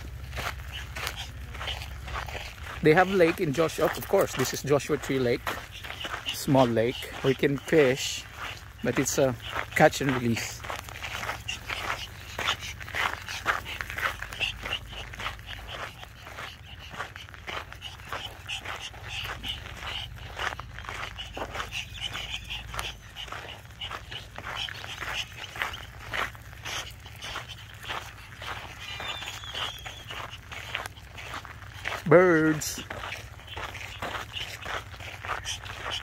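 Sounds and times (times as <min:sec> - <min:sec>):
dog: 0:00.0 - 0:36.0
footsteps crunching on dirt road: 0:00.0 - 0:36.0.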